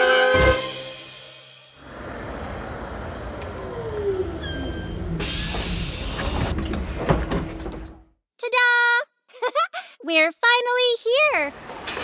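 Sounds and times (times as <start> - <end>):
cartoon bus engine rumbling: 1.8 - 8.2
pneumatic door hiss: 4.6 - 6.8.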